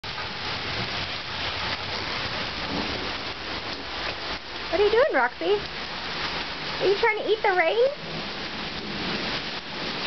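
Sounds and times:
rain falling on pavement: 0:00.0 - 0:10.0.

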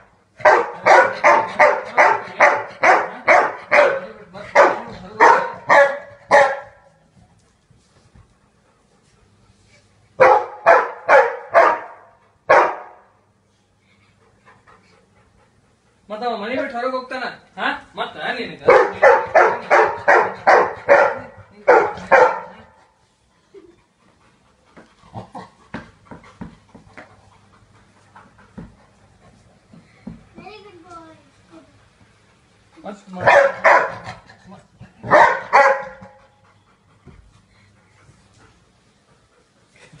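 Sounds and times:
dog barking: 0:00.4 - 0:06.9, 0:10.2 - 0:13.0, 0:18.6 - 0:22.8, 0:33.2 - 0:34.2, 0:35.0 - 0:36.2.

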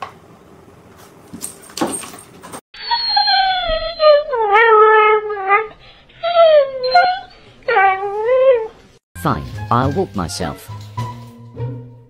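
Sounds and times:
dog whining: 0:02.8 - 0:09.0.

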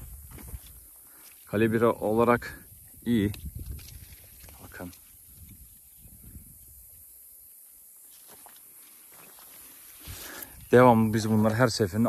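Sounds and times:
footsteps on dry soil: 0:00.0 - 0:01.6, 0:08.0 - 0:12.0
leaves rustling: 0:00.0 - 0:12.0.

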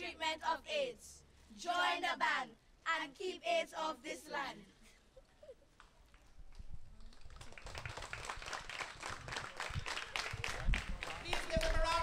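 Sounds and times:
audience clapping: 0:05.8 - 0:12.0.

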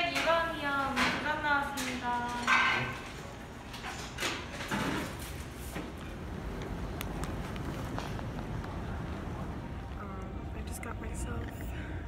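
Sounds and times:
steady low rumble: 0:05.9 - 0:12.0.

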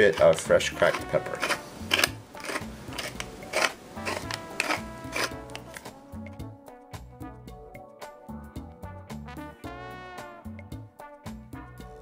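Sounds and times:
pepper mill grinding: 0:00.0 - 0:06.0
background music: 0:00.0 - 0:12.0.

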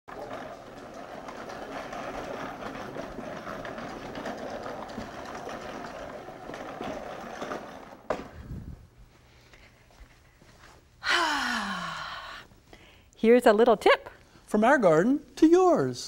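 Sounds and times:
spreader rattling whir: 0:00.1 - 0:08.2.

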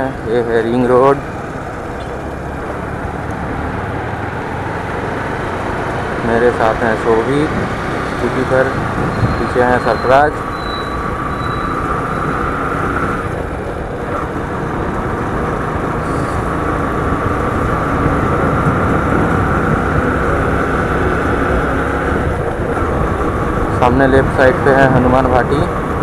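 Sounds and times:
motorcycle engine cruising: 0:00.0 - 0:26.0
wind rushing over microphone: 0:00.0 - 0:26.0.

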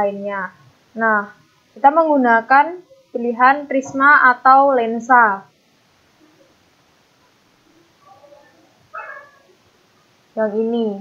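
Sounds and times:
cat meowing: 0:08.0 - 0:09.5.

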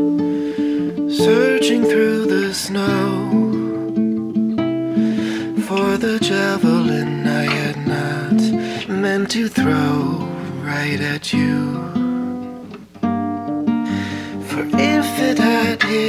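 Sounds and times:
acoustic guitar: 0:00.0 - 0:16.0
man singing softly: 0:01.1 - 0:04.0, 0:05.2 - 0:12.1, 0:14.3 - 0:16.0.

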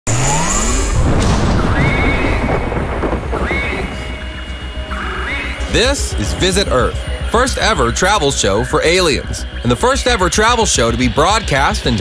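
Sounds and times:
deep pulsing rumble: 0:00.1 - 0:11.4
rising electronic sweeps: 0:00.1 - 0:11.4
electronic tones: 0:01.4 - 0:11.4.

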